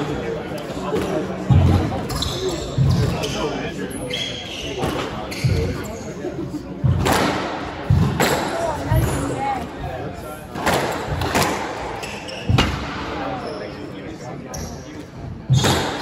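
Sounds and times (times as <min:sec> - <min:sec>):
sneakers squeaking on hardwood: 0:01.5 - 0:06.2, 0:11.8 - 0:15.9.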